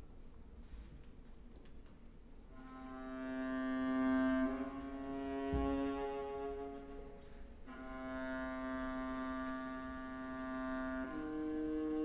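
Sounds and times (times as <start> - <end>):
orchestra holding sustained note: 2.6 - 12.0.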